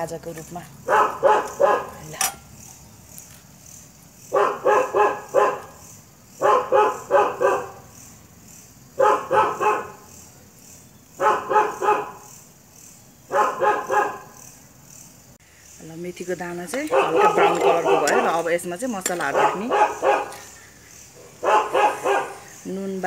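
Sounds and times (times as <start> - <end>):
dog barking: 0.8 - 2.1, 4.3 - 5.8, 6.4 - 7.9, 9.0 - 10.1, 11.2 - 12.3, 13.3 - 14.4, 16.8 - 18.3, 19.2 - 20.6, 21.2 - 22.6.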